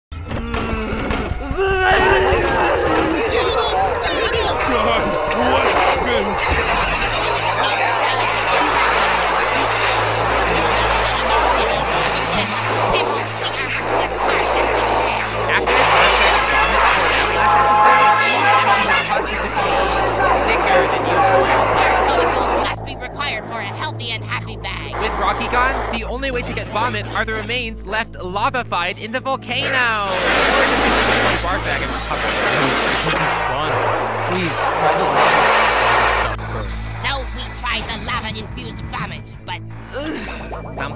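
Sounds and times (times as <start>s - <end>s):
distorted jumble of soundtracks: 0.1s - 40.9s
garbled voice: 0.1s - 40.9s
steady low hum: 2.2s - 40.9s.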